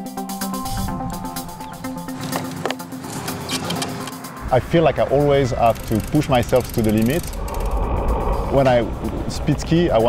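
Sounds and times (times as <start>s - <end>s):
electronic background music: 0.0s - 10.0s
sharp clicks of bike controls: 2.2s - 4.3s, 5.6s - 7.8s.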